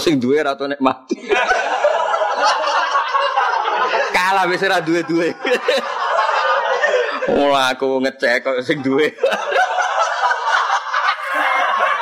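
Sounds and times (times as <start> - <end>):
audience laughing: 1.1 - 7.6, 8.7 - 12.0.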